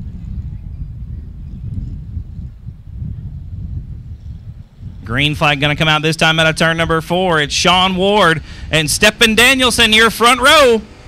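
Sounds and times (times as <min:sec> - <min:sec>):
race car engines rumbling: 0:00.0 - 0:11.0.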